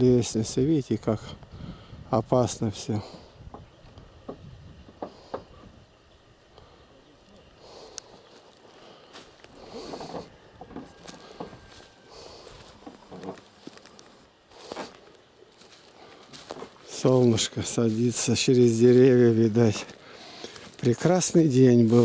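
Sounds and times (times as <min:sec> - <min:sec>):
footsteps swishing through grass: 0:11.0 - 0:22.0.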